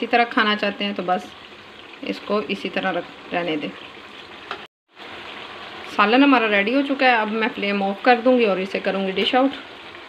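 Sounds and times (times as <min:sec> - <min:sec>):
gravy sizzling in a wok: 0:00.0 - 0:10.0.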